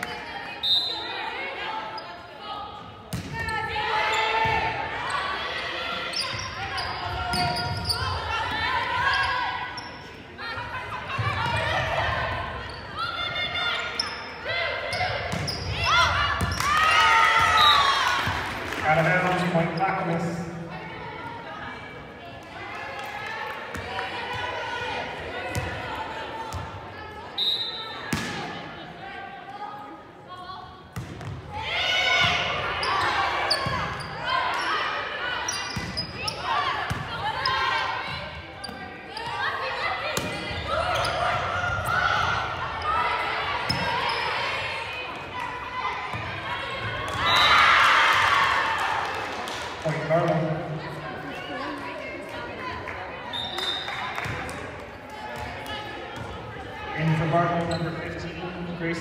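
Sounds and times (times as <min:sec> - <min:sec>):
players calling and shouting: 0:00.0 - 0:59.0
crowd cheering and yelling: 0:36.4 - 0:59.0.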